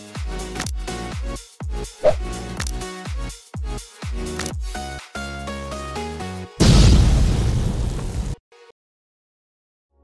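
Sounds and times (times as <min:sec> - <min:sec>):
cartoon explosion blast: 0:06.6 - 0:08.4.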